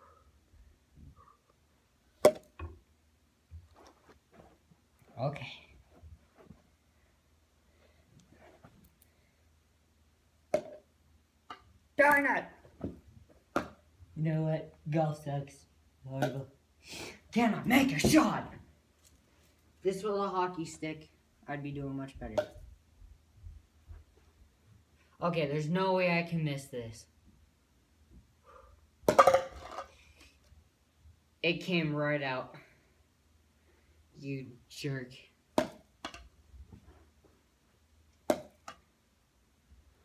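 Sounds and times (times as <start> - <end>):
ball knocking plastic cup: 2.2 - 2.8.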